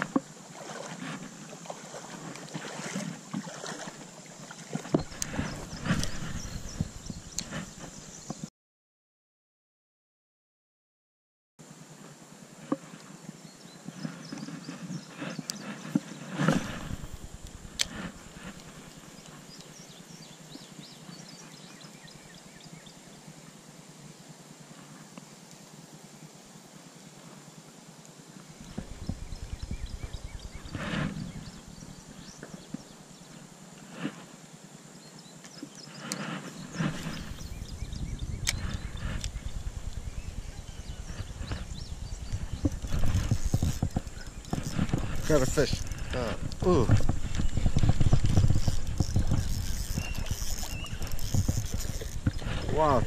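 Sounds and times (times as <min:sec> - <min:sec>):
brushing sounds: 0:28.6 - 0:31.8, 0:35.8 - 0:37.8, 0:38.6 - 0:53.0
reel knocking and rattling: 0:41.1 - 0:53.0
fishing reel cranking: 0:42.6 - 0:53.0.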